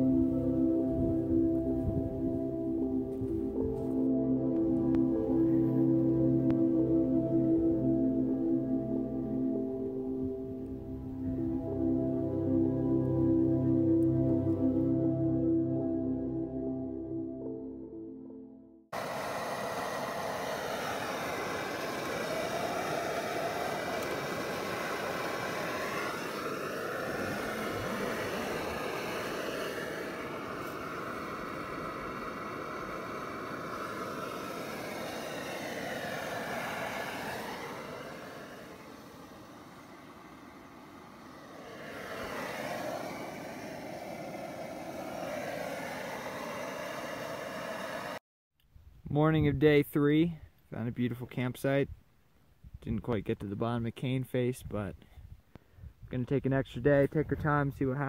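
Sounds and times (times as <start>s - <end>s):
camping stove roaring: 19.0s - 48.2s.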